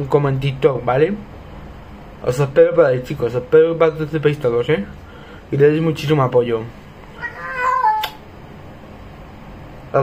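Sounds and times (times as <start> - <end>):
cat meowing: 7.1 - 8.2.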